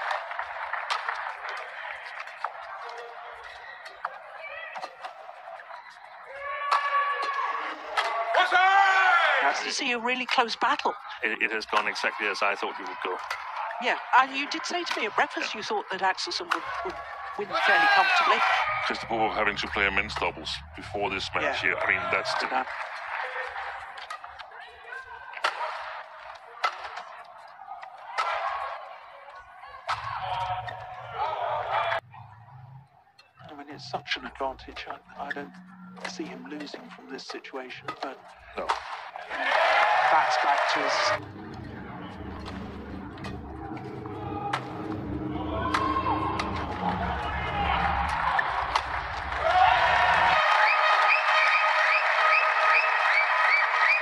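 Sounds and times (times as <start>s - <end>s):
arena crowd hum: 0.0s - 54.0s
rackets hitting shuttlecock: 6.6s - 8.4s, 22.7s - 28.7s, 37.8s - 39.1s.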